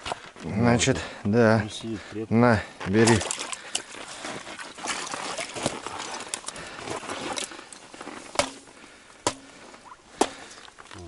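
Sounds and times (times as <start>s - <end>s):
small water splashes: 3.0s - 7.5s
rustling of wet fishing line: 3.0s - 8.3s.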